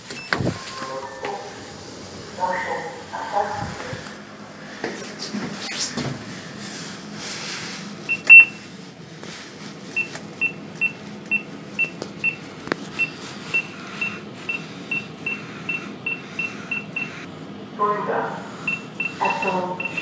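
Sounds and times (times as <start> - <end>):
lift push buttons beeping: 0.0 - 1.6, 8.1 - 8.6, 10.0 - 17.1, 18.7 - 20.0.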